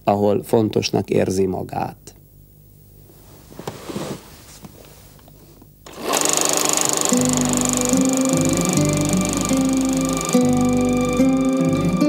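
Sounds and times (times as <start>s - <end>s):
film projector clattering: 5.9s - 11.6s
guitar music: 7.1s - 12.0s.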